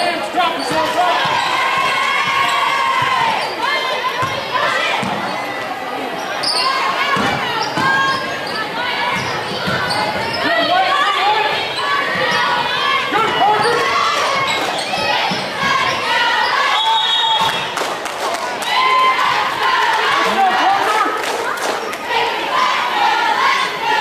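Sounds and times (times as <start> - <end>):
spectators chattering and calling out: 0.0 - 24.0.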